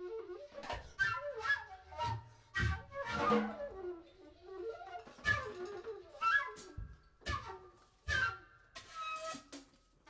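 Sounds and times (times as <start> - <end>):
flute sliding line: 0.0 - 9.6.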